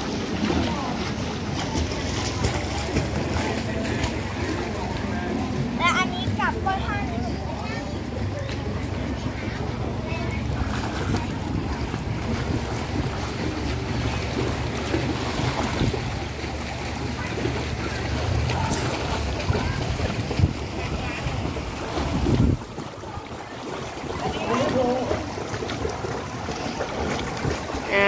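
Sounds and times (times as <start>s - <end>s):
pool water splashing: 0.0s - 28.0s
wind buffeting microphone: 17.9s - 23.2s.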